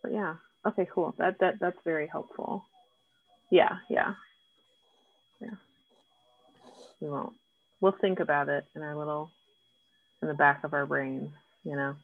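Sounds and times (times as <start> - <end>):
thin steady high whine: 0.0 - 12.0.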